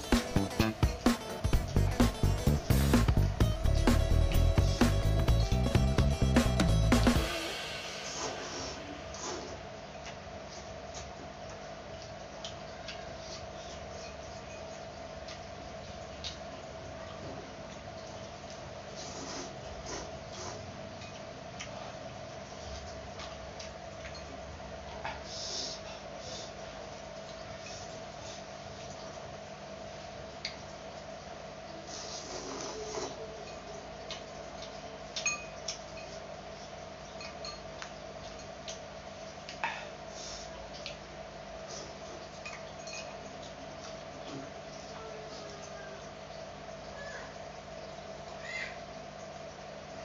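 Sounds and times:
faint steady hum: 0.0s - 50.0s
noodles slurped and chewed: 18.5s - 21.9s, 31.9s - 33.2s
cutlery clinking on ceramic bowl: 35.2s - 36.1s, 42.5s - 43.2s.

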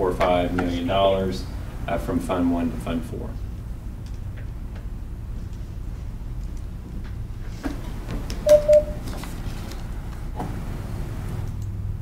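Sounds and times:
low room hum: 0.0s - 12.0s
short electronic beeps: 8.4s - 9.0s.

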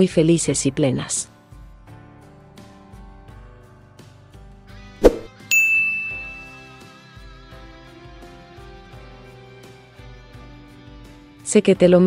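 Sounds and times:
soft background music: 0.0s - 12.0s
high bell ding: 5.5s - 6.9s.

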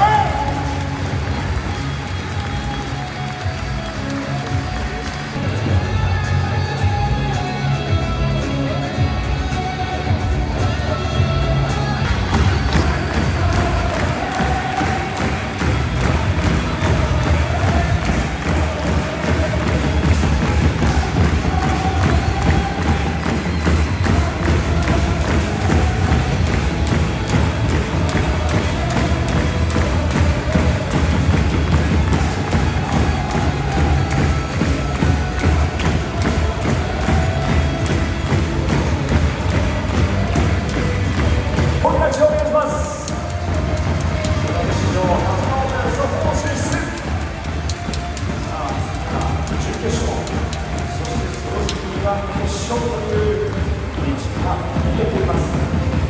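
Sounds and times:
drum beats: 0.0s - 56.0s
stadium crowd singing: 5.6s - 41.0s.

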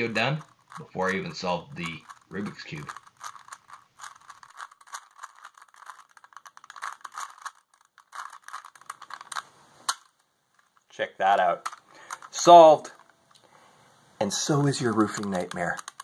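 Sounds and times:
puzzle cube layers clicking: 0.0s - 13.2s, 14.2s - 16.0s.

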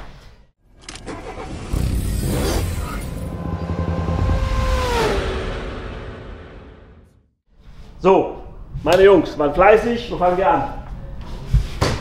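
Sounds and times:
low rumble: 2.0s - 7.4s
whoosh sweeping past: 2.1s - 7.2s.

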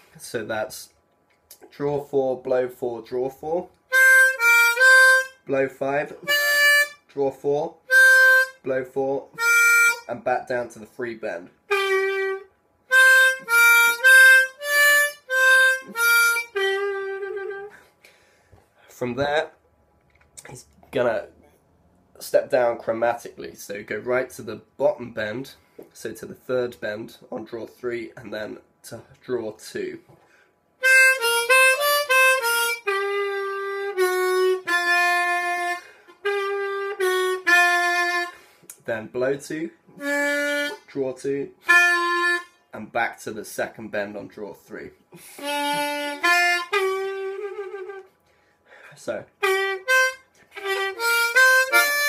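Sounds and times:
harmonica notes: 3.9s - 7.1s, 7.8s - 10.2s, 11.7s - 18.2s, 30.8s - 38.8s, 39.9s - 41.0s, 41.6s - 42.7s, 45.1s - 48.1s, 48.7s - 52.0s.

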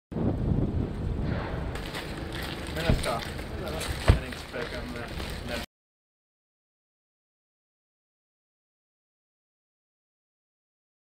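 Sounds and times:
wind buffeting microphone: 0.1s - 5.6s.

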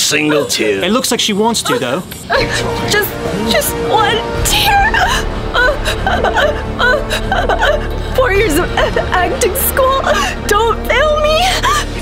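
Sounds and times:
woman sobbing and whimpering: 1.6s - 3.1s, 4.5s - 12.0s
background music: 1.8s - 12.0s.

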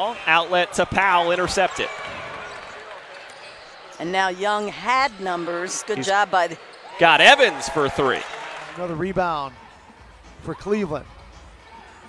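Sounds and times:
crowd and court noise: 0.0s - 12.0s.

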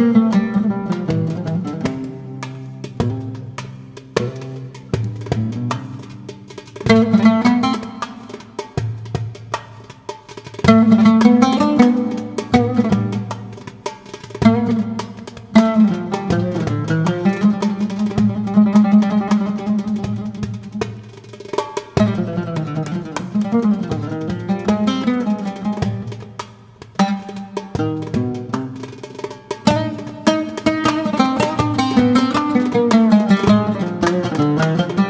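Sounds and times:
oud melody: 0.0s - 8.7s, 10.7s - 26.4s, 27.0s - 35.0s
goblet drum strikes: 0.0s - 35.0s.

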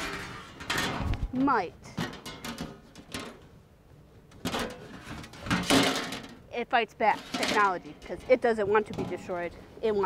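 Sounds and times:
sheet metal cover sliding: 0.0s - 1.3s
metal clunks and scrapes: 0.0s - 3.5s, 4.3s - 6.4s, 7.0s - 9.6s.

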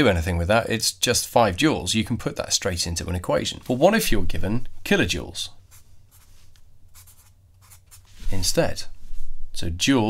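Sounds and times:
marker writing on a surface: 5.7s - 8.2s.

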